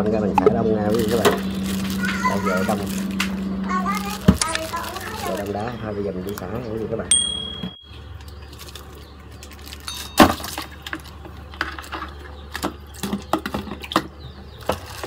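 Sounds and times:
plastic bag crinkling: 0.8 - 6.4, 8.1 - 12.2, 14.6 - 15.0.

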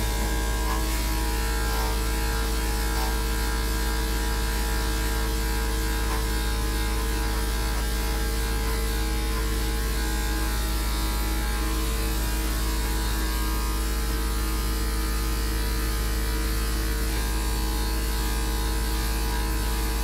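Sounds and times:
deep background hum: 0.0 - 14.1
electric clipper humming: 0.0 - 20.0.

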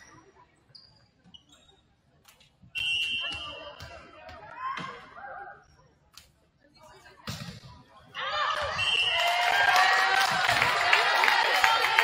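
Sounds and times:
referee's whistle blast: 2.8 - 3.8.

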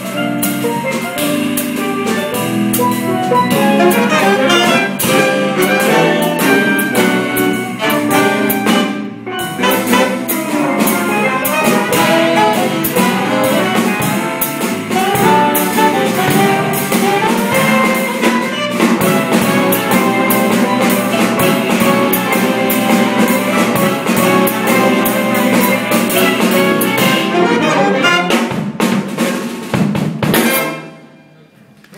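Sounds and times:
jazz ensemble playing: 0.0 - 31.5.

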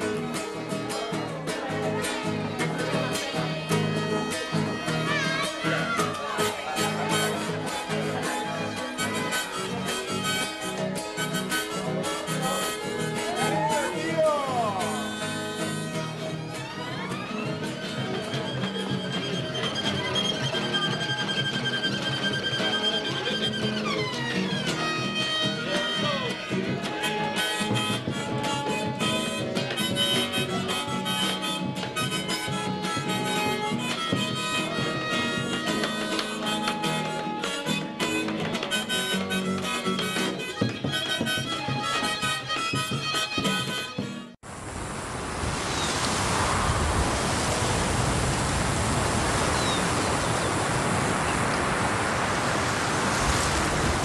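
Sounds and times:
harmonica melody: 0.0 - 44.4.

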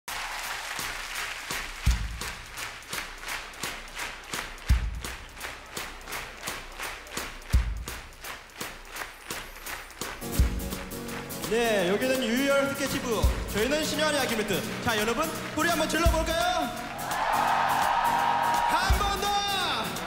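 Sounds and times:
audience clapping in unison: 0.1 - 20.0.

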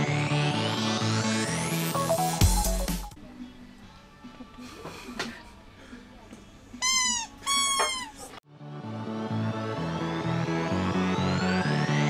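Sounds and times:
electronic dance music: 0.0 - 3.2
rubber squeaky toy squeaks: 6.8 - 8.4.

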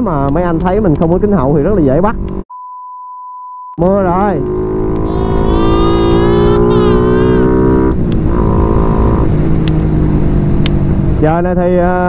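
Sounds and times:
motorcycle engine running: 3.9 - 11.1.

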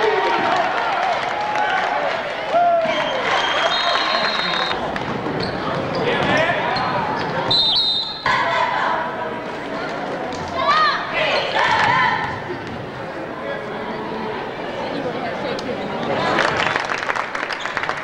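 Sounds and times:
crowd and players' voices echoing: 0.0 - 18.0
referee's whistle: 2.8 - 4.8, 7.5 - 8.4.

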